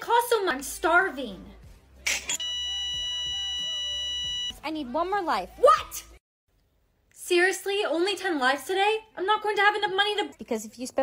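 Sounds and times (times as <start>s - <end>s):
faint background music: 0.0s - 6.2s, 7.1s - 11.0s
long steady electronic beep: 2.3s - 4.6s.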